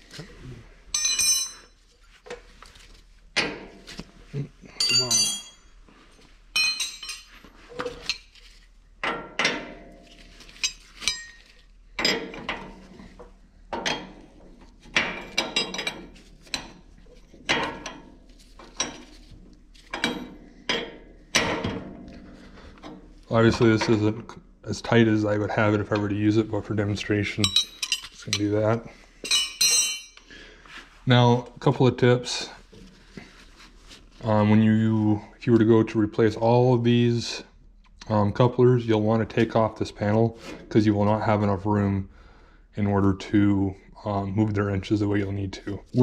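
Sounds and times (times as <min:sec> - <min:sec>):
metal wrench clinks and scrapes: 0:00.9 - 0:01.8, 0:04.8 - 0:05.7, 0:06.5 - 0:12.9, 0:15.0 - 0:20.9, 0:27.1 - 0:30.3.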